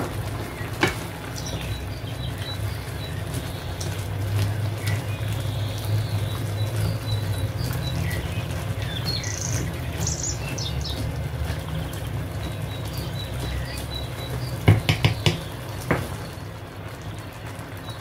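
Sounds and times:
chickpeas simmering in sauce: 0.0 - 18.0
wooden spatula stirring and mashing: 0.0 - 18.0.

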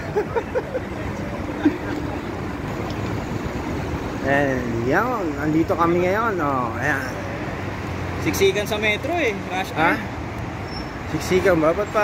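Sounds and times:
cars passing: 0.0 - 12.0.

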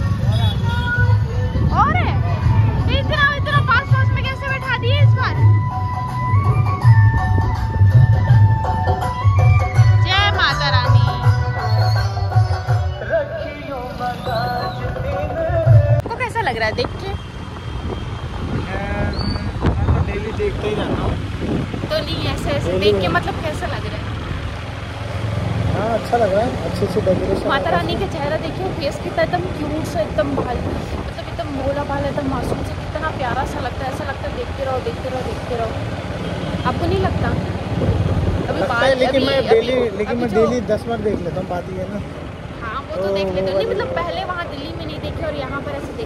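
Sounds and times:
low vehicle rumble: 0.0 - 46.0
road noise: 0.0 - 46.0
wind noise: 6.4 - 9.0, 15.8 - 23.5, 29.9 - 34.6, 37.2 - 39.0
wind on microphone: 15.8 - 22.8.

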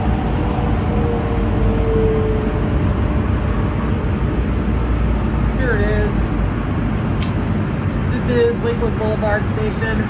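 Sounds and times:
low rumble of freeway traffic: 0.0 - 10.0
ventilation hum: 0.0 - 10.0.

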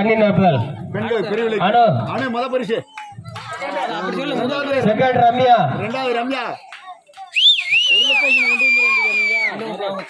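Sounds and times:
voices: 0.0 - 10.0
person whistling loudly: 7.3 - 9.5.

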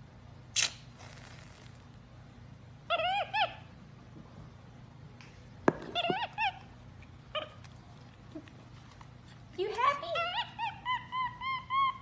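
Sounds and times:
monkey squeaky chirping calls: 10.2 - 12.0.

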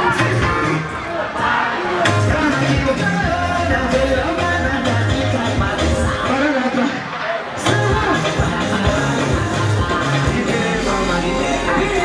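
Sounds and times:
crowd shouting along: 0.0 - 4.4, 5.3 - 12.0
live music through loudspeakers: 0.0 - 12.0.

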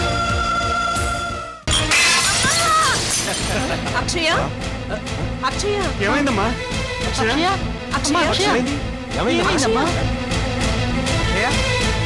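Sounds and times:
glass shattering crash: 1.7 - 3.8.

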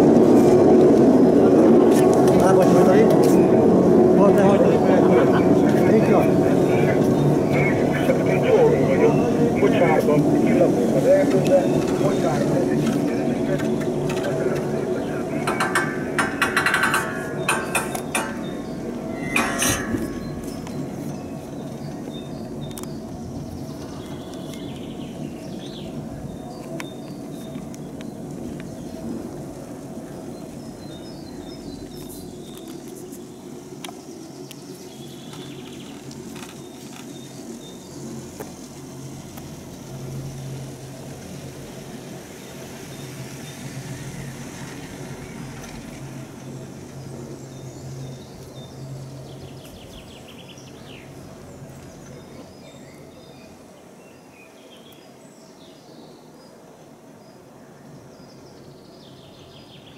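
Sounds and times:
chairlift rumble and hum: 0.0 - 53.8
birds chirping: 1.6 - 59.9.

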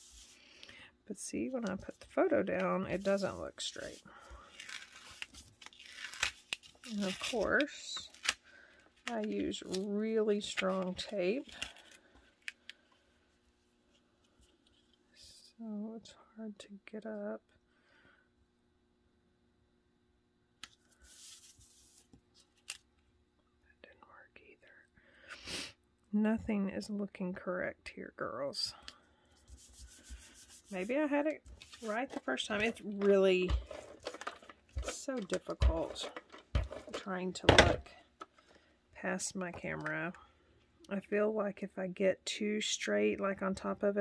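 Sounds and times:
photo peeling off tape: 4.5 - 8.4
paper handling: 29.5 - 37.1.

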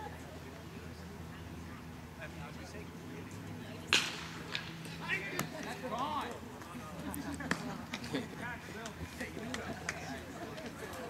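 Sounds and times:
bat cracking a baseball: 3.9 - 5.7.

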